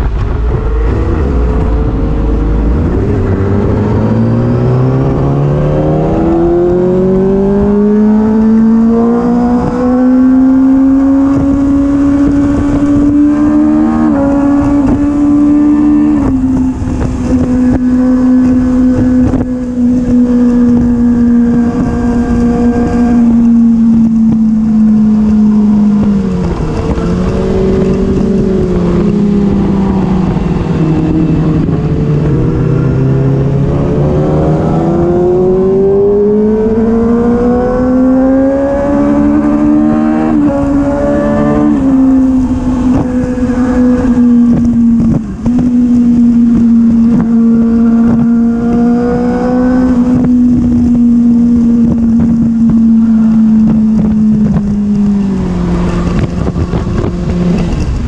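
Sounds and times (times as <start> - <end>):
motorcycle engine accelerating: 0.0 - 58.0
wind on microphone: 0.0 - 58.0.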